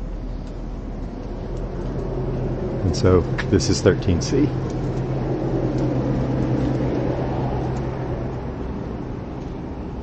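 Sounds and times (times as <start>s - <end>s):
low machine hum: 0.0s - 10.0s
rumbling wash of noise: 0.0s - 10.0s.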